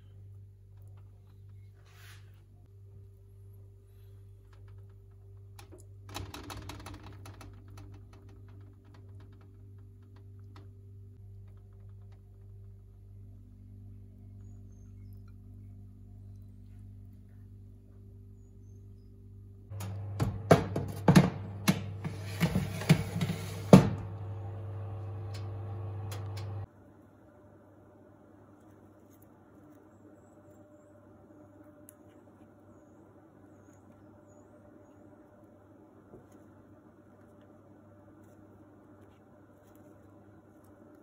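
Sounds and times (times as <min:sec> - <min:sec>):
oven fan hum: 0:18.1 - 0:26.7
soft clicks: 0:25.2 - 0:26.7.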